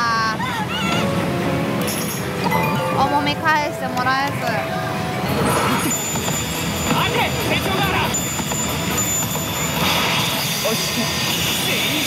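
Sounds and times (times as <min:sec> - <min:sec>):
pachinko hall din: 0:00.1 - 0:12.0
slot machine music and effects: 0:01.3 - 0:11.4.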